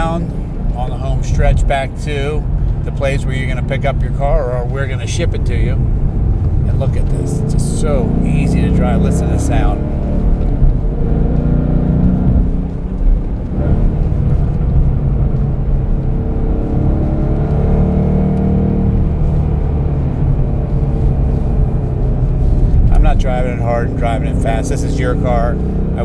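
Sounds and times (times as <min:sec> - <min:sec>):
car engine accelerating from inside cabin: 0:00.0 - 0:26.0.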